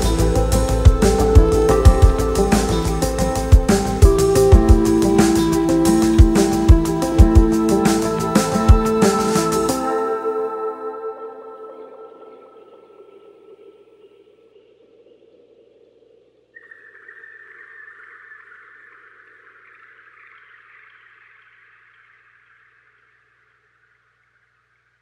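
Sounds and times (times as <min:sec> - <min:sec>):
hissy textured effect with held tone: 0:00.0 - 0:25.0.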